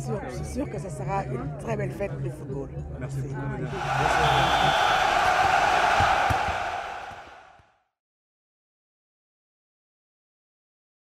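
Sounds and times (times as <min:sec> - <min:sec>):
loud even rushing noise: 0:03.7 - 0:07.6.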